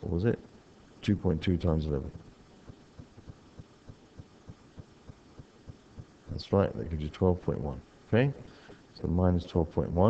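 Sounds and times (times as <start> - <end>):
quiet background hum: 0.0 - 10.0.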